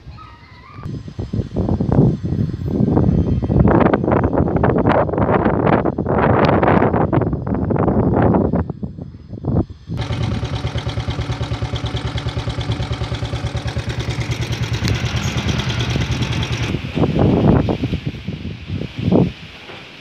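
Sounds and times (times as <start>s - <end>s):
wind buffeting microphone: 0.9s - 19.6s
motorcycle engine running: 10.0s - 16.8s.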